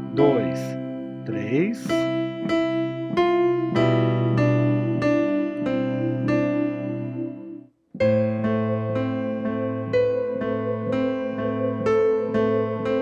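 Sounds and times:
electronic keyboard piano melody: 0.0s - 13.0s.

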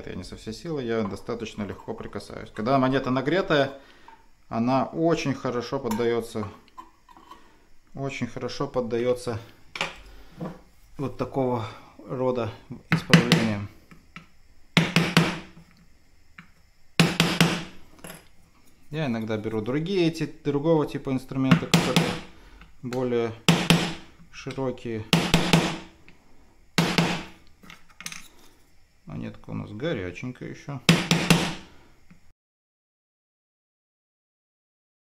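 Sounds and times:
pry bar knocking on wood: 21.5s - 22.3s, 23.5s - 24.0s, 25.1s - 25.9s.

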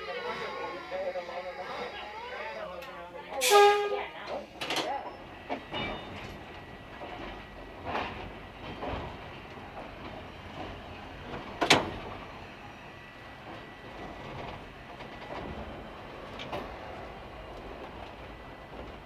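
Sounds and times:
railcar rumbling: 0.0s - 19.0s
electric railcar horn: 3.4s - 4.2s
wheels clacking on rails: 3.8s - 19.0s.

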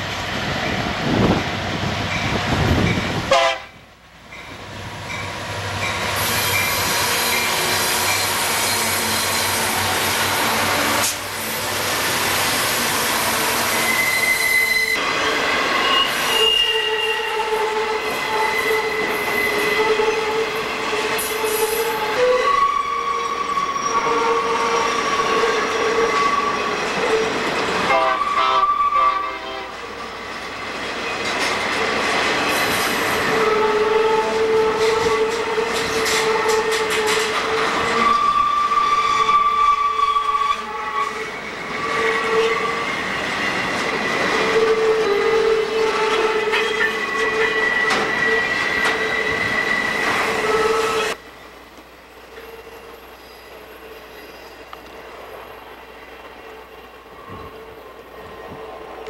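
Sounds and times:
train wheels squealing: 5.1s - 10.0s, 13.1s - 27.4s, 32.4s - 51.2s, 52.3s - 59.0s
wheels clattering on rails: 30.4s - 33.4s, 34.8s - 38.2s.

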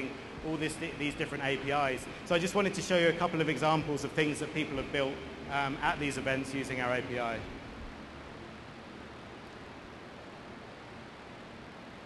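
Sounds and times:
sound system hiss: 0.0s - 12.0s.

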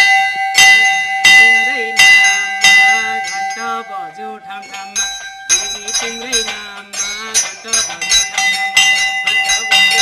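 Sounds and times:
brass bells ringing: 0.0s - 10.0s.

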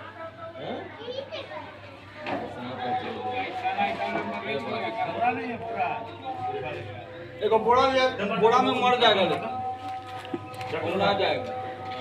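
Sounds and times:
people talking and calling out: 0.0s - 12.0s
children's voices: 0.9s - 2.4s.

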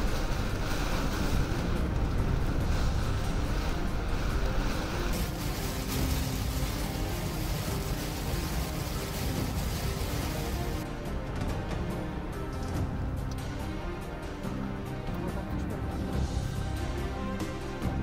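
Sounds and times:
heavy rain on car: 0.0s - 10.8s
background music: 0.0s - 18.0s
road noise inside car: 0.2s - 10.8s.

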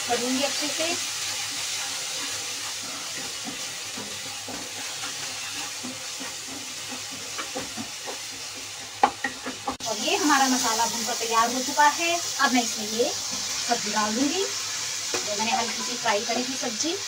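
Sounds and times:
sauce sizzling in hot oil: 0.0s - 17.0s
wooden spatula scraping a pan: 0.4s - 9.8s, 14.7s - 16.5s.

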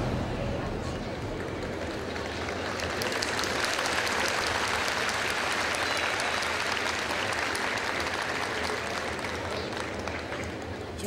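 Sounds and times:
audience applauding: 1.0s - 11.0s.

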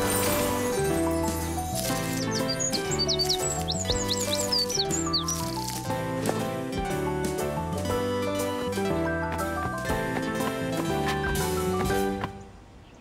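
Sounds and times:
background music: 0.0s - 12.6s
small bird chirping: 2.0s - 5.7s.

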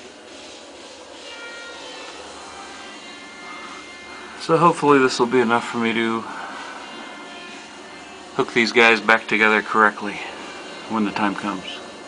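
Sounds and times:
faint steady tones: 0.0s - 12.0s.

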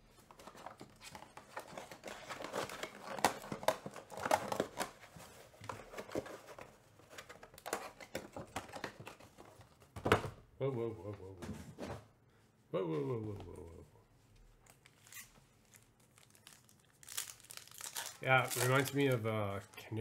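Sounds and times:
crinkling and rustling: 0.0s - 10.4s, 13.1s - 20.0s.

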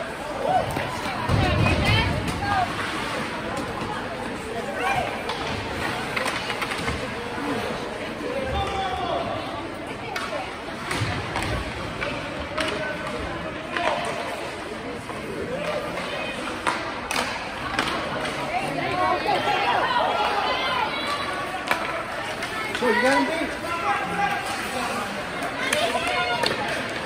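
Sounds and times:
skates scraping ice: 0.0s - 27.0s
hockey stick and puck clacks: 3.2s - 7.2s, 10.0s - 19.6s, 20.2s - 27.0s.

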